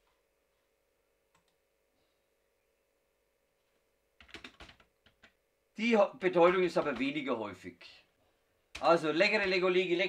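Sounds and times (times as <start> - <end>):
computer keyboard typing: 4.2 - 5.4, 6.4 - 7.2, 8.7 - 9.8.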